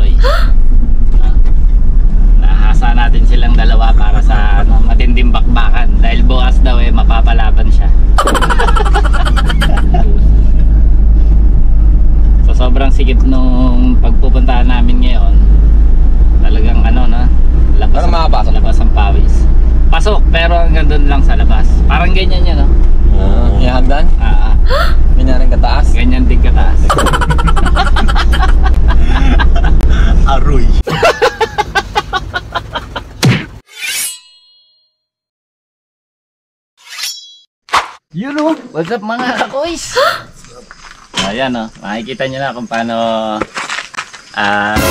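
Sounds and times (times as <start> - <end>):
truck engine rumble: 0.0 - 33.6
men talking and laughing: 7.4 - 10.8, 23.2 - 33.2, 38.9 - 43.6.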